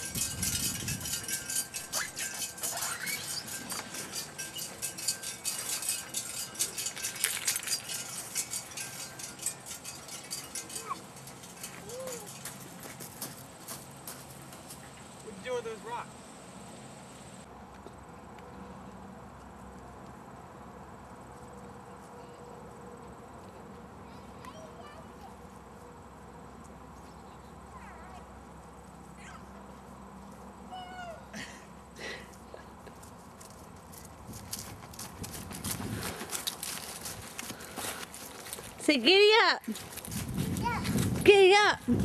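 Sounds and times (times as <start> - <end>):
footsteps through dry leaves: 33.2 - 38.8, 39.6 - 41.3.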